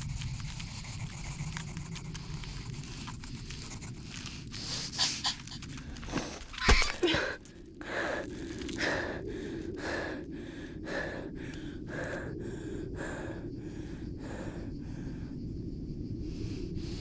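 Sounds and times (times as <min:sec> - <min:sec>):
steady low rumble: 0:00.0 - 0:06.5, 0:07.2 - 0:17.0.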